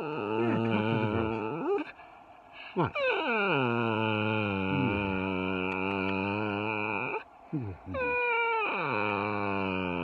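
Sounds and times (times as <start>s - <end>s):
dog whining and howling: 2.8s - 7.2s, 7.9s - 10.0s.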